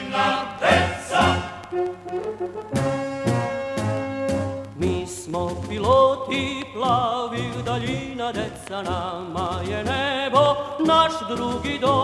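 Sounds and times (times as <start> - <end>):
choir singing march: 0.0 - 3.9
band accompaniment: 0.0 - 12.0.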